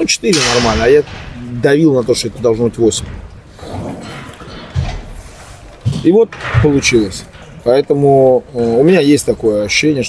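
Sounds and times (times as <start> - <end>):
man speaking: 0.0 - 3.2, 5.9 - 10.0
steady background noise: 0.0 - 10.0.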